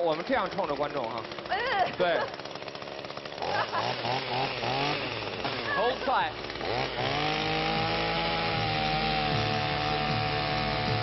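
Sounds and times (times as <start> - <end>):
chainsaw running: 0.0 - 11.0.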